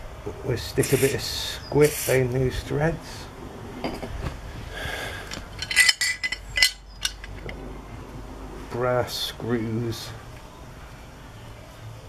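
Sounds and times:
metal parts clinking: 5.3 - 7.6.

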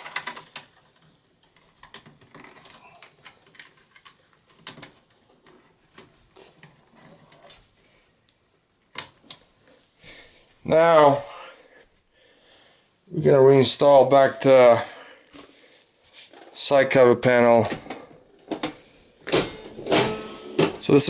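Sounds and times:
small clicks and rattles of plastic: 0.0 - 7.6.

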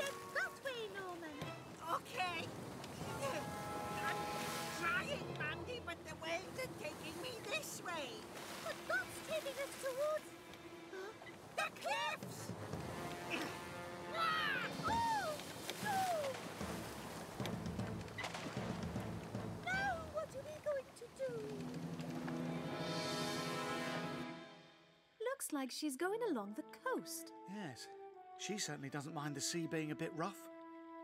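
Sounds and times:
cartoon background music: 0.0 - 2.4, 3.0 - 15.3, 18.2 - 31.0
rough sea: 0.0 - 22.6
children's frightened cries: 14.1 - 16.4.

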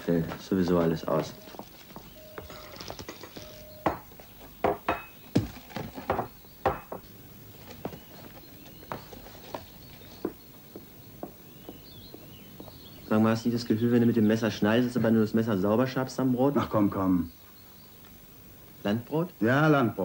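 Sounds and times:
crockery and cutlery clinking: 2.4 - 5.2, 5.8 - 7.0.

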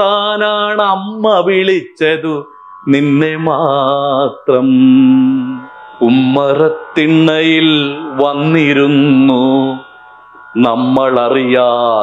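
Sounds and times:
man singing a melody: 0.0 - 9.9, 10.6 - 12.0.

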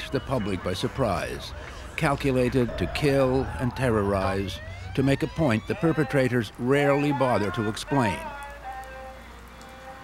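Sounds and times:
steady hiss of rain: 0.0 - 10.0.

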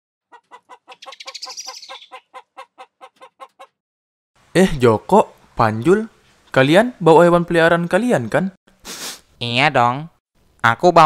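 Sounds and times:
chicken clucking rapidly: 0.2 - 3.8.

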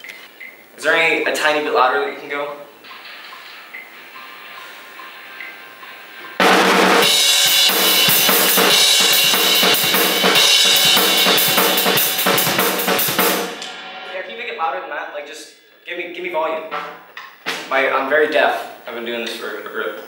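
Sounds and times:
drum kit played hard: 2.8 - 14.8.

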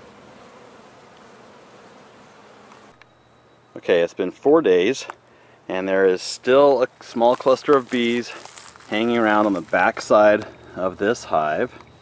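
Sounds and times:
honey bees buzzing: 0.0 - 3.6, 4.2 - 12.0.

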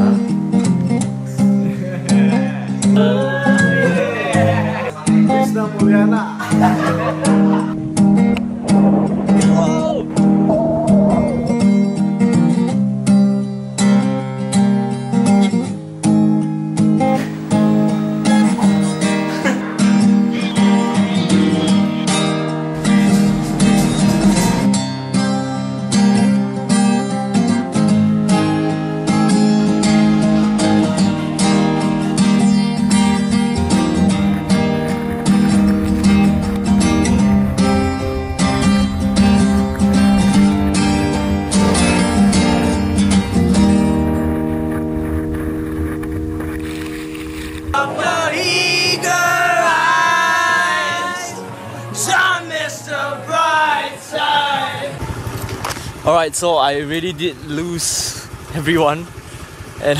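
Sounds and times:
acoustic guitar strumming chords: 0.0 - 57.7.

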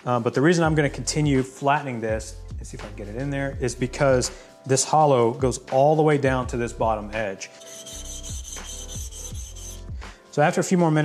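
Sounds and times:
background music with beat: 0.0 - 11.0
chisel scraping on sharpening plate: 7.6 - 9.9.

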